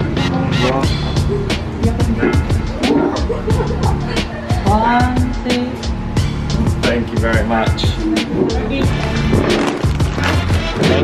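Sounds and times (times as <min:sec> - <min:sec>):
bass line: 0:00.0 - 0:11.0.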